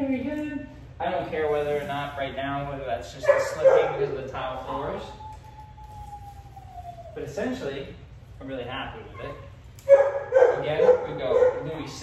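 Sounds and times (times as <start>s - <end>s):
faint siren wail: 4.7s - 7.8s.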